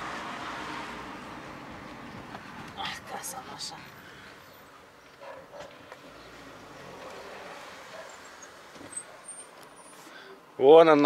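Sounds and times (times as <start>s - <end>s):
car driving slowly: 0.0s - 10.6s.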